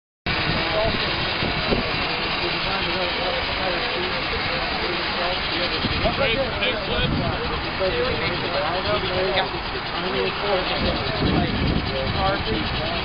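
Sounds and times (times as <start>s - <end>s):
indistinct voices talking: 0.3s - 13.0s
loud steady noise: 0.3s - 13.0s.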